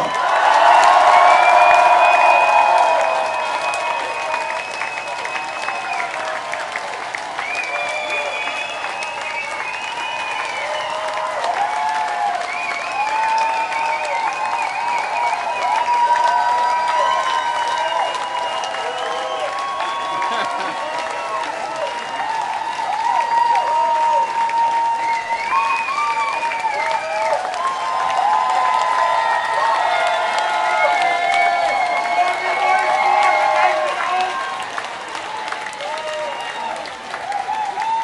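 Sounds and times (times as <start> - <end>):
crowd applauding and cheering: 0.0 - 38.0.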